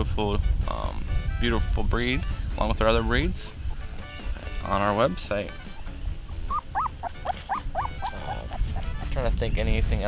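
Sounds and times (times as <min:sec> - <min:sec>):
puppies whimpering: 0:02.8 - 0:04.6, 0:05.6 - 0:09.2.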